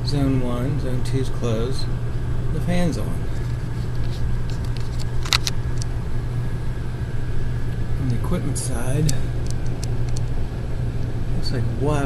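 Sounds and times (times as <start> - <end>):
blower fan humming: 0.0 - 12.0.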